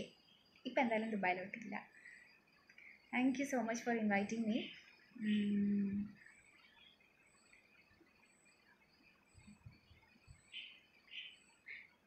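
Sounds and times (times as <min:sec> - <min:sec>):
faint room hiss: 0:00.0 - 0:12.0.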